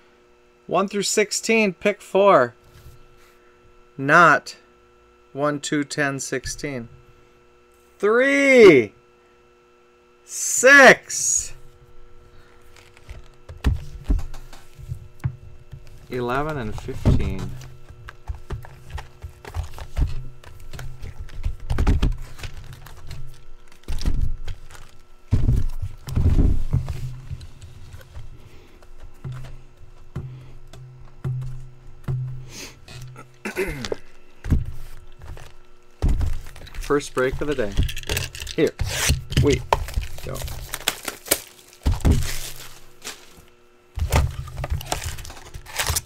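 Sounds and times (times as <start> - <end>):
packaging crinkling: 12.4 - 13.5, 15.8 - 26.4, 34.8 - 43.5, 44.1 - 46.0
cardboard boxes clicking and tapping: 15.2 - 32.4
boxes thudding on table: 33.8 - 38.1, 39.2 - 43.4.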